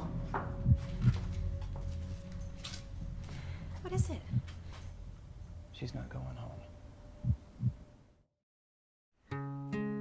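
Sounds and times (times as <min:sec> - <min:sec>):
low heartbeat-like thumps: 0:00.0 - 0:01.4, 0:03.7 - 0:04.6, 0:07.2 - 0:07.8.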